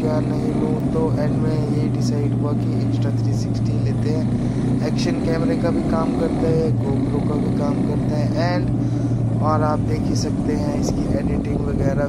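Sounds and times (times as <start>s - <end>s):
man talking: 0.0s - 8.8s, 9.4s - 12.0s
motorcycle engine cruising: 0.0s - 12.0s
wind noise: 10.4s - 12.0s.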